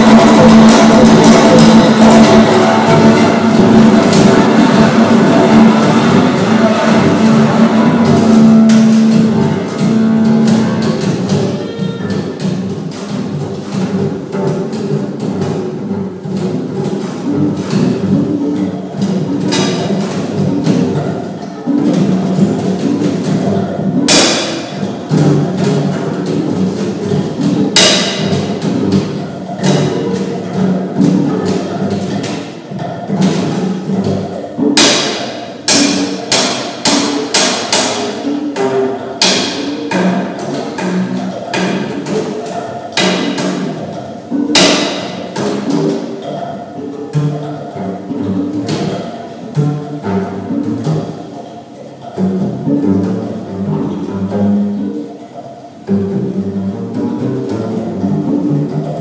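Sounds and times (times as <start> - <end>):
double basses playing: 0.0 - 59.0.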